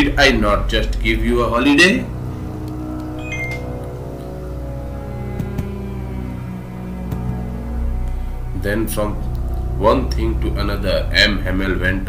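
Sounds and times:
low hum with sustained tones: 0:00.0 - 0:12.0
short high tones: 0:03.2 - 0:03.7.

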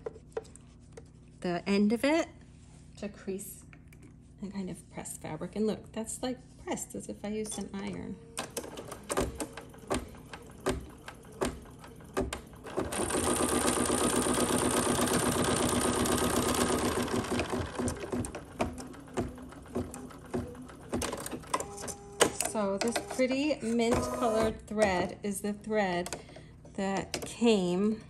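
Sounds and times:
embroidery machine stitching: 0:08.4 - 0:25.1.

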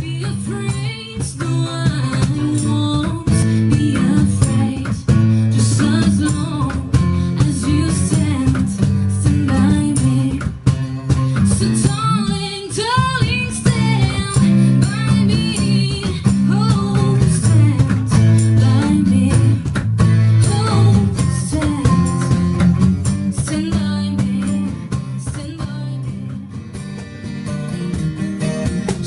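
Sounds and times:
woman singing: 0:00.0 - 0:26.8
acoustic guitars strumming: 0:00.0 - 0:29.0
cajon beat: 0:00.0 - 0:29.0.

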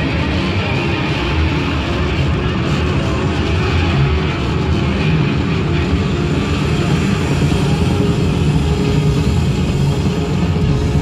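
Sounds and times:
bowed double bass drone: 0:00.0 - 0:11.0
sustained guitars: 0:00.0 - 0:11.0.

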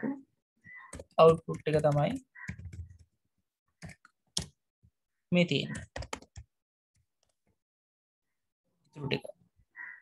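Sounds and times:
keyboard keys clicking: 0:00.8 - 0:03.2, 0:05.7 - 0:06.5
person speaking: 0:00.9 - 0:02.3.

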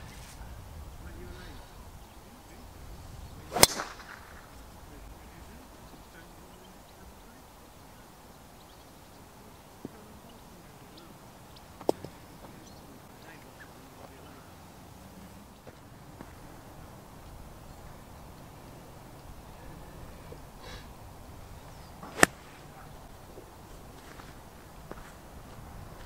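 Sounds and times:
golf club striking ball: 0:03.5 - 0:04.5, 0:22.0 - 0:22.8.

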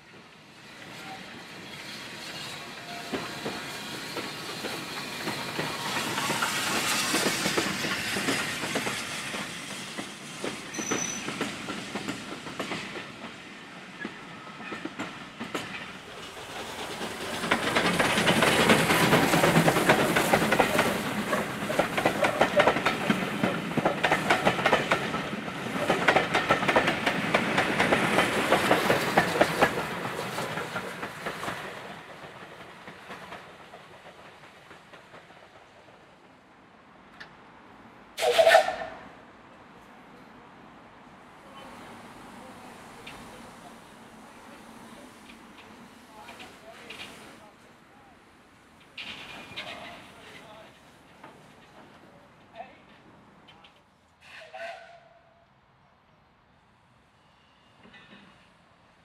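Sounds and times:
steam hiss: 0:00.4 - 0:14.6, 0:41.5 - 0:47.6
wheels clacking over rail joints: 0:02.9 - 0:36.1, 0:48.7 - 0:55.0.

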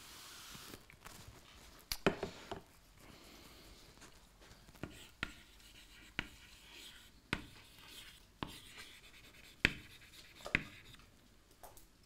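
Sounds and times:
chalk scratching: 0:04.8 - 0:11.0
chalk tapping on blackboard: 0:04.8 - 0:11.0.

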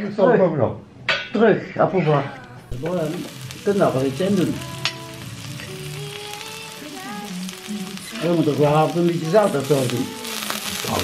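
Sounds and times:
meat sizzling on a grill: 0:02.6 - 0:11.0.

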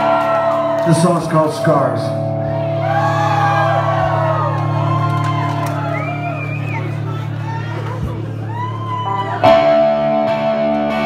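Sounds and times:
crowd cheering and whistling: 0:00.0 - 0:01.8, 0:02.4 - 0:10.1
low drone from stage: 0:02.1 - 0:11.0.

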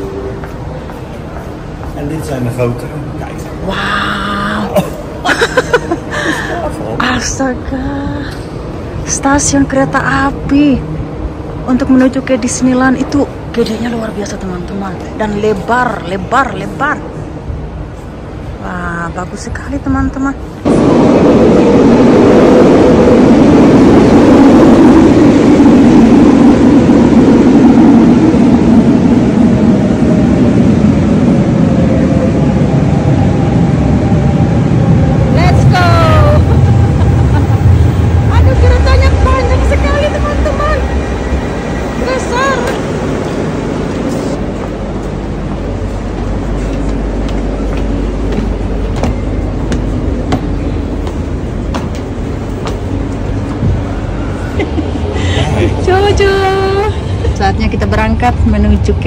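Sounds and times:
electric train rumbling: 0:00.0 - 0:59.0
train steady hum: 0:00.0 - 0:59.0.

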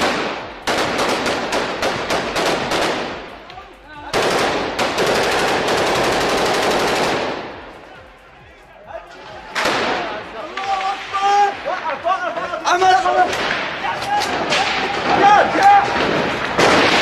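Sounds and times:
automatic rifle fire: 0:00.0 - 0:03.2, 0:04.1 - 0:07.6, 0:15.9 - 0:17.0.

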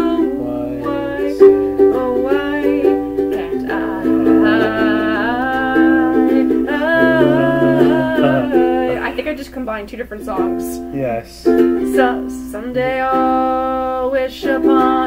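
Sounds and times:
woman singing long notes: 0:00.0 - 0:09.3, 0:11.8 - 0:15.0
ukulele strumming chords: 0:00.0 - 0:09.4, 0:10.2 - 0:15.0.

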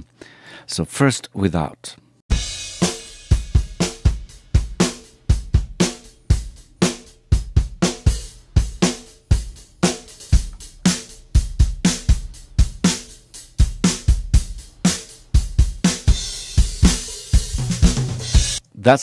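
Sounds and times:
drum kit groove: 0:02.3 - 0:18.7.

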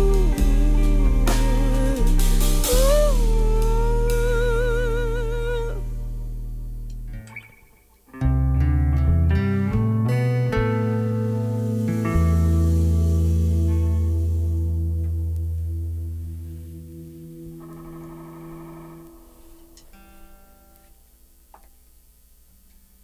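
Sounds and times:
woman singing with vibrato: 0:00.0 - 0:05.9
single guitar notes picked: 0:00.0 - 0:21.7.

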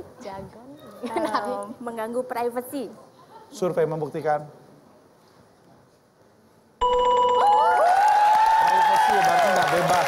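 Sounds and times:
game show bell tone: 0:06.8 - 0:08.0
studio audience cheering: 0:07.4 - 0:10.0.

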